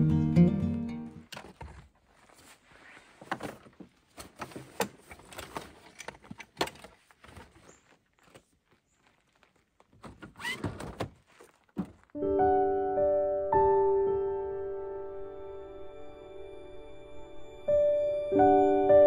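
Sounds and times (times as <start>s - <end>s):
acoustic guitar music: 0.0s - 1.3s
bags and gear being packed: 1.2s - 12.2s.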